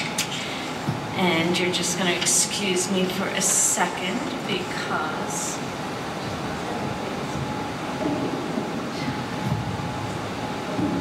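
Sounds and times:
faint steady hum: 0.0 - 11.0
low rumble and hiss: 0.0 - 11.0.

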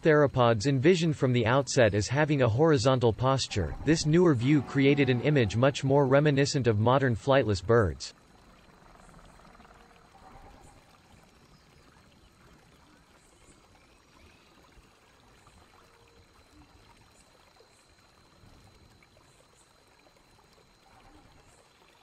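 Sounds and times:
faint trickling water: 0.0 - 22.0.

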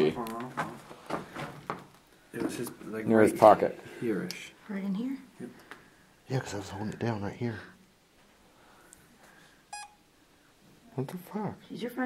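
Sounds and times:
short electronic beep: 9.7 - 10.0.

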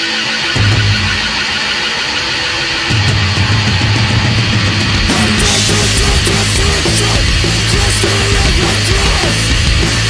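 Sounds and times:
distorted heavy band noise: 0.0 - 10.0.

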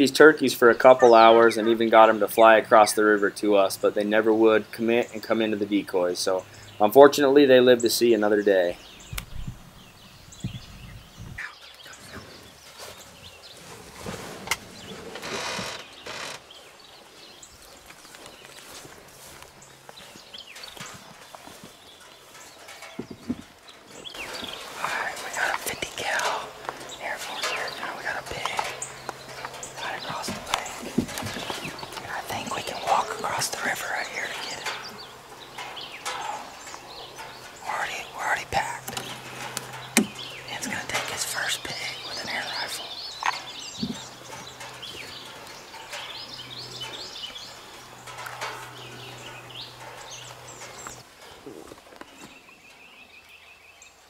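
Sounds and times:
whispered voices: 24.4 - 28.8, 29.4 - 34.8, 37.5 - 39.6, 40.4 - 44.0.

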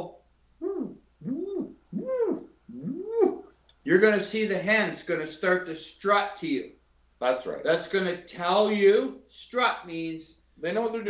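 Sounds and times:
man imitating pigeon cooing: 0.0 - 3.6.

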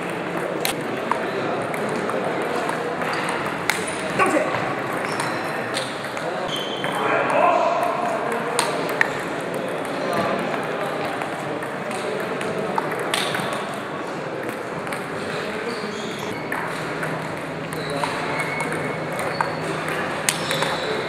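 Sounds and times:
murmur of voices: 0.0 - 21.0
table tennis ball ticking: 16.4 - 21.0.

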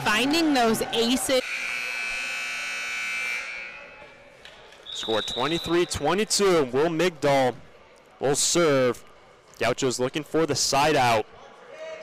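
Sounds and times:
electronic buzzer tone: 1.4 - 3.9.

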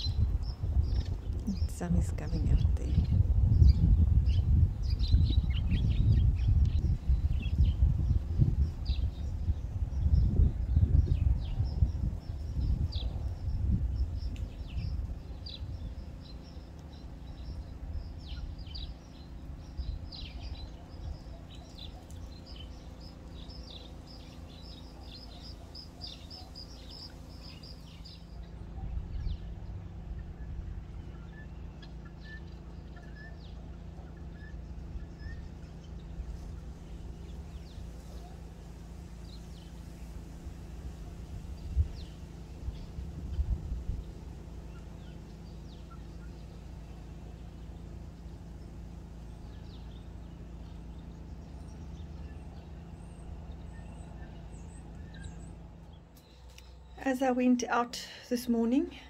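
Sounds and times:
low rumble: 0.0 - 33.7.

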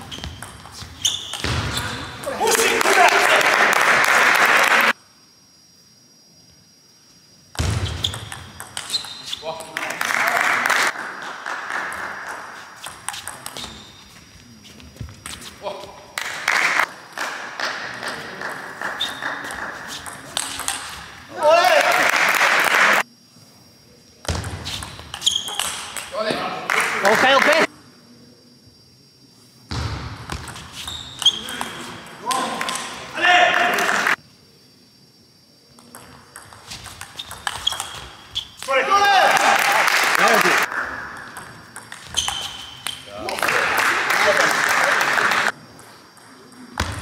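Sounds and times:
loud shout: 2.2 - 4.9, 21.3 - 23.0, 32.2 - 34.2, 38.6 - 40.7
clapping: 2.6 - 4.9, 9.6 - 12.4, 16.2 - 19.8, 21.6 - 23.0, 26.7 - 27.7, 39.3 - 40.7, 43.2 - 45.5
person shouting: 38.7 - 39.6.

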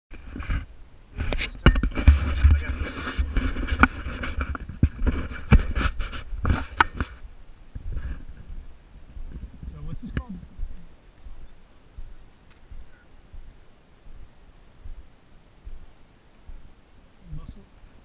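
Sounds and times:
wind buffeting microphone: 0.1 - 17.2
footsteps on sandstone: 0.2 - 16.8.

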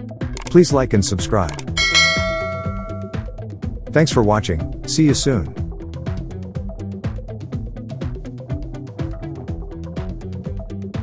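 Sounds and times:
background music: 0.0 - 11.0
bright bell-like chime: 1.8 - 3.4.

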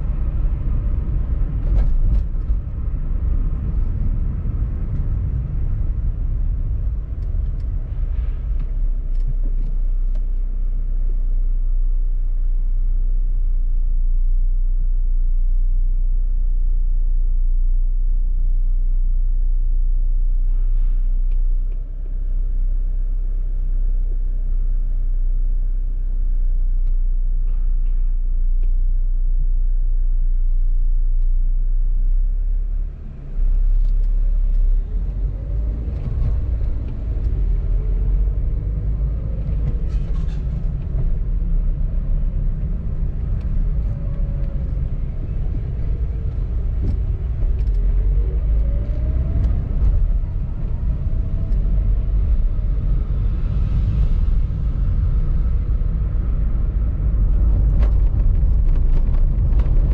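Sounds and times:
car engine rumble: 0.0 - 59.9
road noise inside car: 0.0 - 59.9.

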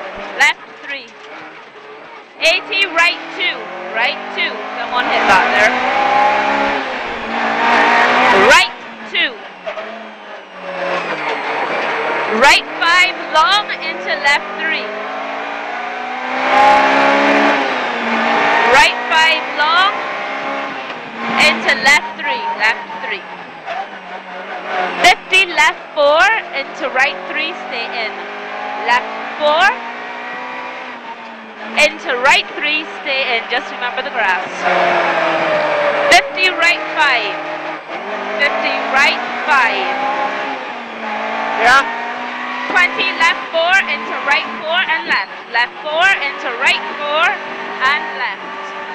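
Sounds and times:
rally car engine revving: 0.0 - 48.9
road noise: 0.0 - 48.9.

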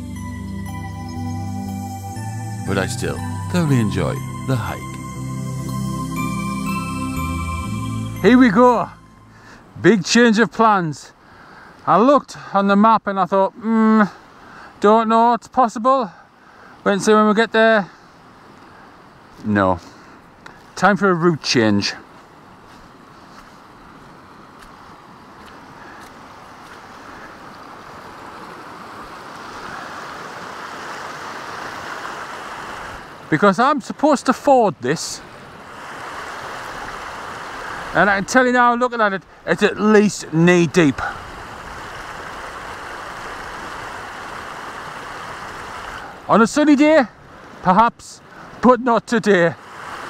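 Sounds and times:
rushing stream water: 0.0 - 50.0.

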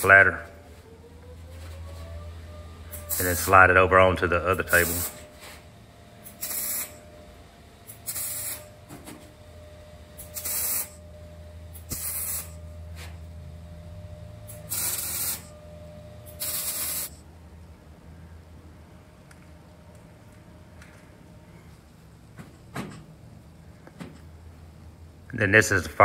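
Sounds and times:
faint low hum: 0.0 - 26.0
welder arc hissing: 2.9 - 3.6, 4.5 - 5.6, 6.2 - 7.1, 7.8 - 8.8, 10.2 - 11.0, 11.7 - 12.6, 14.5 - 15.5, 16.3 - 17.2.

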